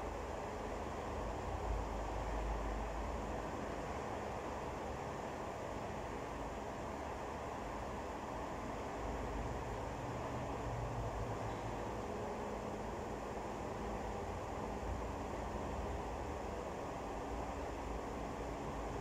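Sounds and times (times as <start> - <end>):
low rushing background noise: 0.0 - 19.0.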